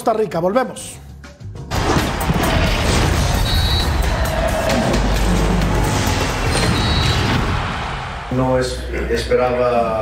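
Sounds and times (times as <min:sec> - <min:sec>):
sharp hit effects: 0:01.7 - 0:08.6.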